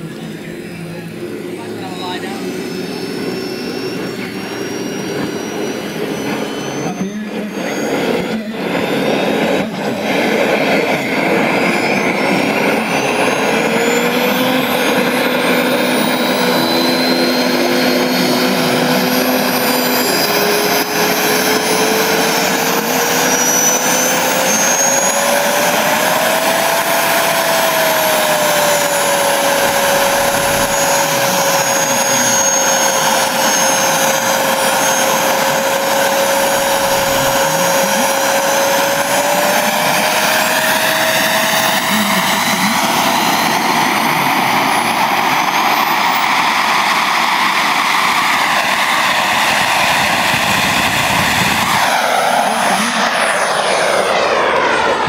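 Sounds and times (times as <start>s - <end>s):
gas turbine whining: 0.0s - 55.0s.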